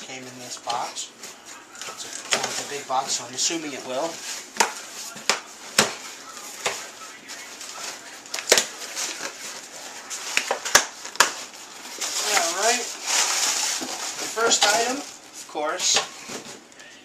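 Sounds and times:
cardboard rustling and scraping: 0.1 - 16.7.

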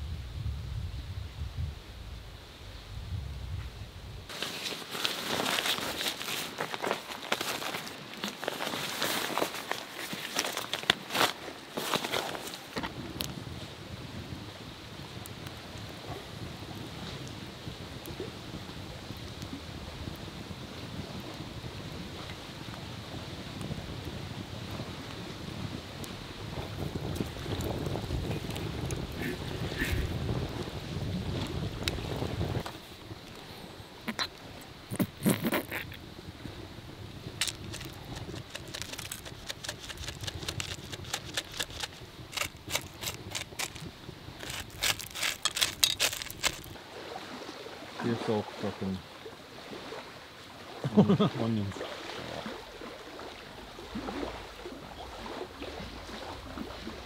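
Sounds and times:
wind buffeting microphone: 12.8 - 33.3, 34.1 - 46.8
rustling and sharp clicks: 37.4 - 46.8.

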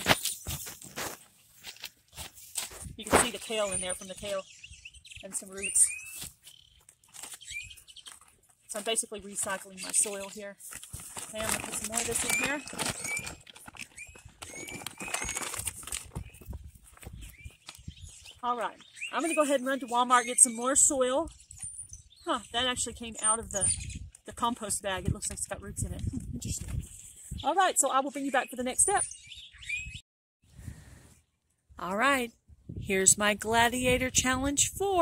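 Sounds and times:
soil rustling into plastic tote: 0.0 - 4.4, 5.3 - 17.8
high bird chirps: 3.3 - 8.2, 12.2 - 15.5, 16.2 - 24.1, 26.8 - 30.0.

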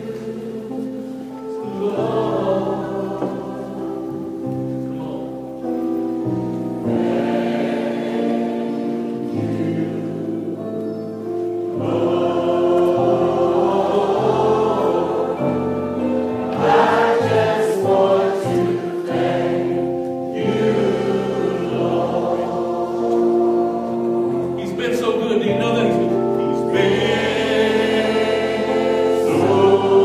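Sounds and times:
congregation singing a hymn: 0.0 - 30.0
sustained accompanying chords: 0.0 - 30.0.

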